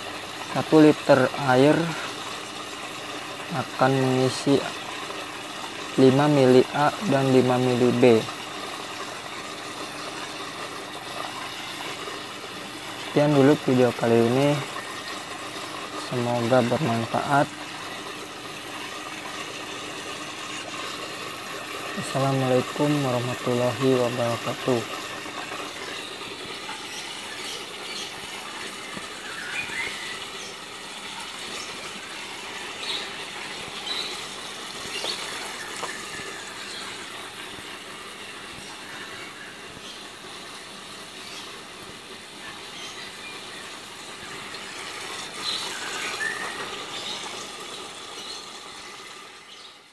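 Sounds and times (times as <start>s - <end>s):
outdoor background hiss: 0.0s - 49.9s.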